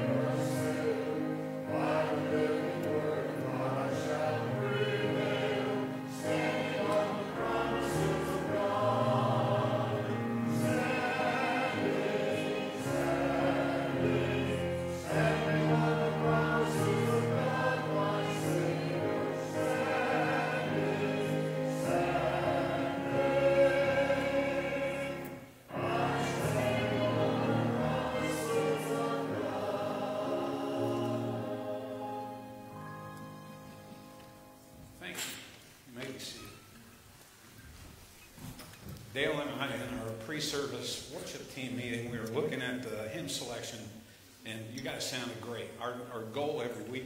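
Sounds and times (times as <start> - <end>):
congregation singing a hymn: 0.0 - 35.4.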